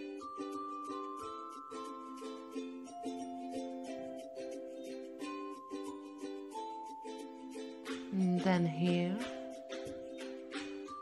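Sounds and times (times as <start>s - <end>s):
soft plucked-string music: 0.0s - 11.0s.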